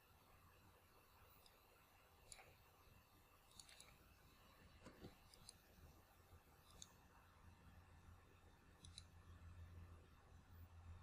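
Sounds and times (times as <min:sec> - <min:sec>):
computer mouse clicks: 0:01.3 - 0:05.9, 0:06.6 - 0:07.1, 0:08.8 - 0:09.2.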